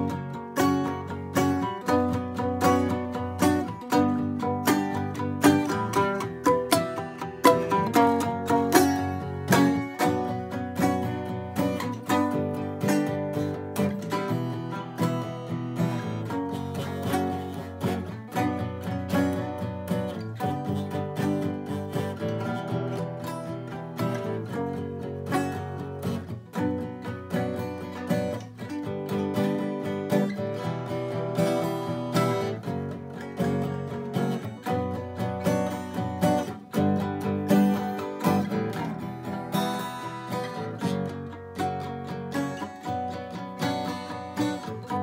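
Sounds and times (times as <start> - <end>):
acoustic guitar strumming: 0.0 - 45.0
balalaika strumming: 0.0 - 45.0.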